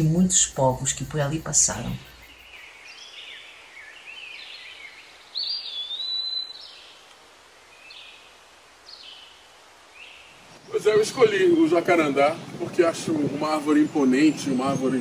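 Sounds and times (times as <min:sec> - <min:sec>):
birds chirping faintly: 0:00.0 - 0:15.0
steady background hiss: 0:00.0 - 0:15.0.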